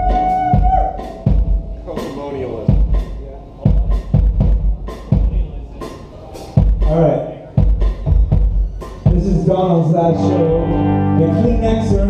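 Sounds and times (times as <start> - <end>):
drum kit slow beat: 0.0 - 12.0
electric guitar note ringing: 10.1 - 12.0.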